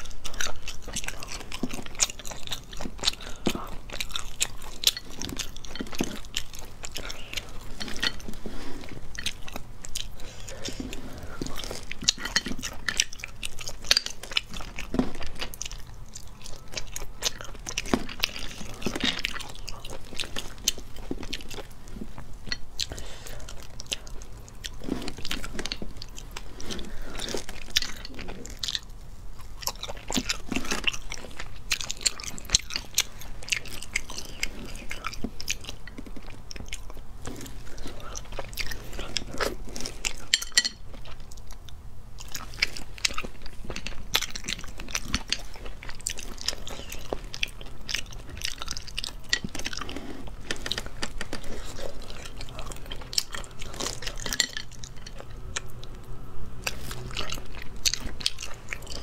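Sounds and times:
chewing: 0:00.0 - 0:59.0.

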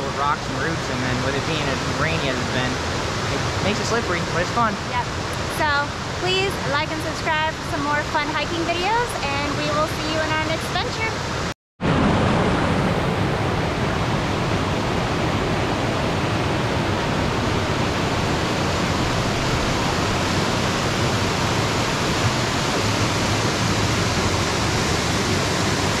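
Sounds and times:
water rushing over rocks: 0:00.0 - 0:26.0.

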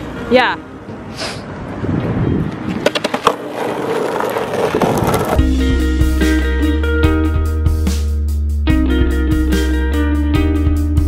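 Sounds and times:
skateboard wheels rolling on pavement: 0:00.9 - 0:06.5
skateboard clacks: 0:02.6 - 0:05.4
music with steady bass: 0:05.4 - 0:11.0.

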